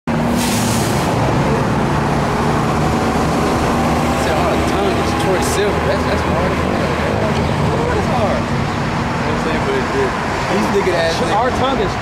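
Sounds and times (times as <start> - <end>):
cars passing with tyre noise: 0.1 - 12.0
engine hum: 0.1 - 12.0.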